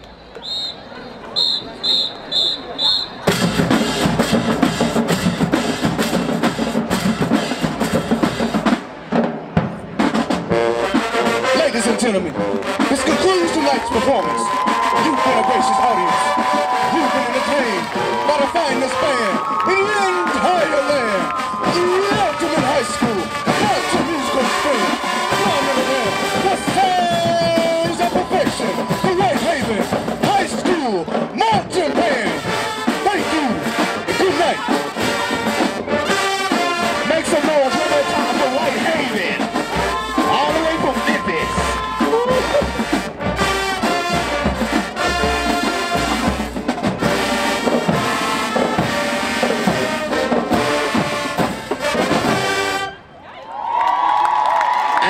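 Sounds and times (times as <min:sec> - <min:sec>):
marching band brass: 0:00.4 - 0:53.2
drumline hits: 0:03.2 - 0:53.0.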